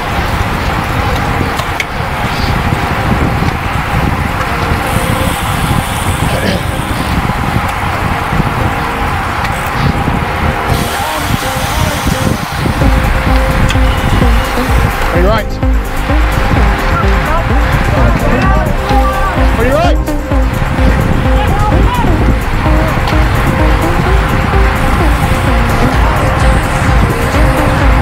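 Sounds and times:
music: 0.0 - 28.0
wind rushing over microphone: 0.0 - 28.0.

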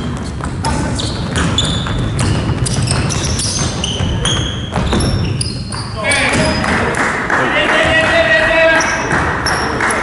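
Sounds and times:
sneaker squeaks: 0.0 - 6.8, 8.5 - 10.0
basketball bouncing: 0.0 - 6.9, 7.8 - 10.0.

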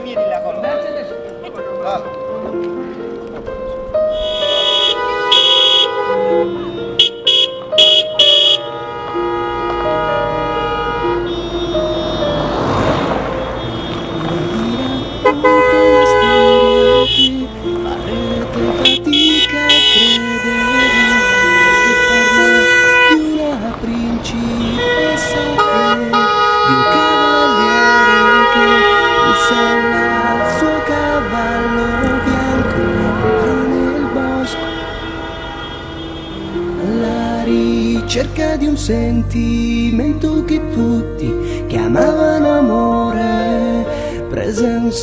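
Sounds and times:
car horns honking: 4.0 - 38.6
band playing: 4.1 - 8.7
car driving past: 9.7 - 18.8, 22.5 - 38.8.

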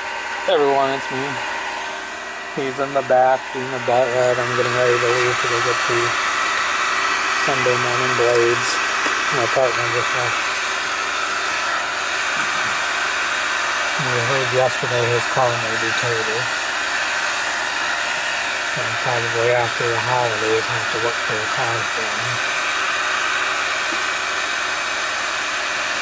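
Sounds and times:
heater fan blowing: 0.0 - 26.0.

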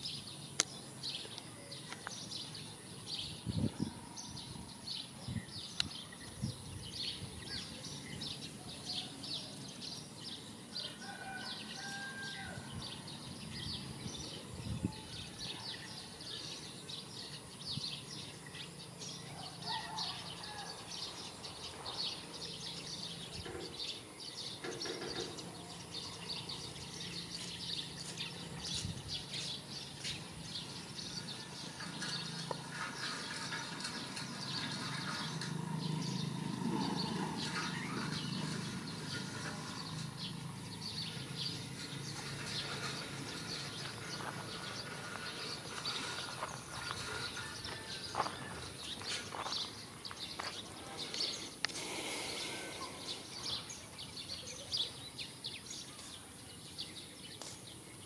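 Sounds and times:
birds chirping: 0.0 - 58.0.

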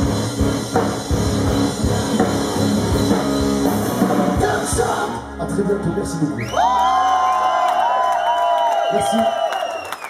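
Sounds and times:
crowd cheering: 6.4 - 10.0.

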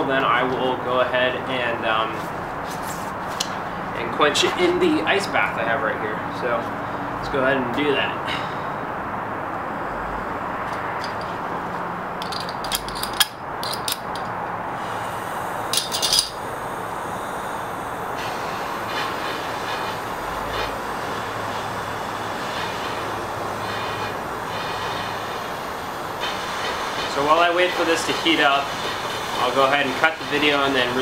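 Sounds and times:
propane torch hissing: 14.0 - 31.0.

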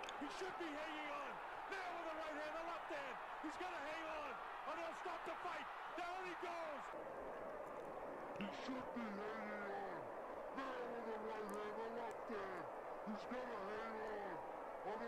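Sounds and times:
man commentating: 0.0 - 6.9, 8.4 - 15.0
arena crowd noise: 0.0 - 15.0.

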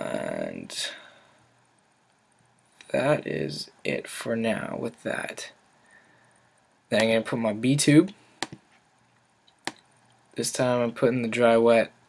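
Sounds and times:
computer mouse clicks: 8.4 - 8.6, 9.5 - 9.9.

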